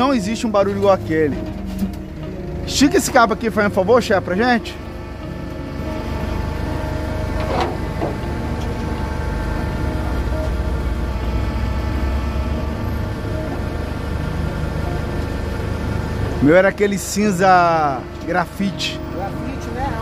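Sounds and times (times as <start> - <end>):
truck engine running: 0.0 - 20.0.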